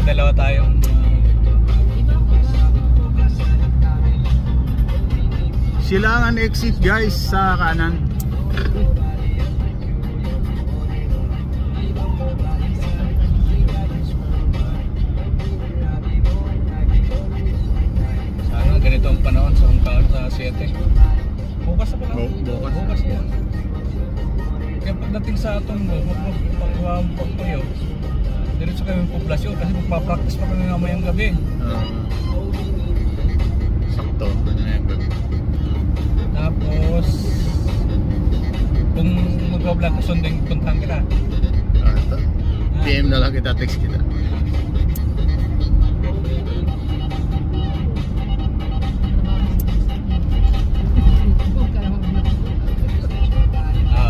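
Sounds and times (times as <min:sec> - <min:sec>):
car engine and tyre rumble: 0:00.0 - 0:54.0
music with singing: 0:00.0 - 0:54.0.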